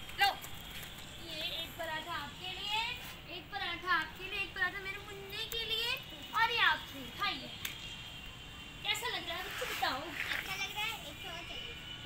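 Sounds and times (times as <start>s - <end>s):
children chattering and calling: 1.6s - 7.6s, 8.7s - 12.0s.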